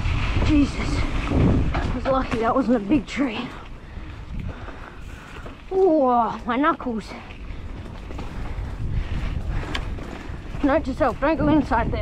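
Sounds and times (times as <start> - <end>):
bike tyres rumbling on dirt: 0.0 - 12.0.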